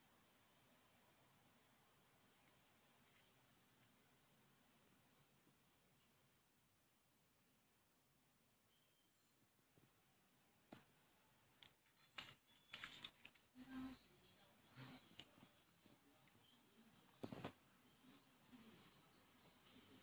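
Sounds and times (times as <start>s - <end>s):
card folder and plastic sleeves rustling: 11.6s - 13.6s.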